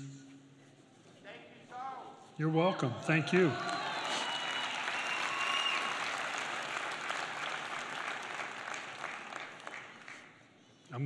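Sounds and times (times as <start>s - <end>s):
congregation applauding: 3.1s - 10.6s.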